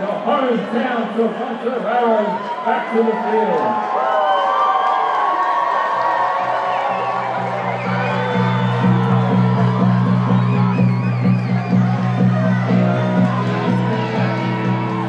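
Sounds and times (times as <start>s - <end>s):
crowd cheering and whooping: 1.9s - 15.0s
music with pulsing bass: 6.8s - 15.0s.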